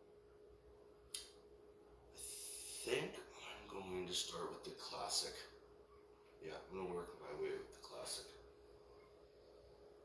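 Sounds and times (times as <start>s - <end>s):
faint steady hum: 0.0s - 10.0s
short sharp click: 1.1s - 1.4s.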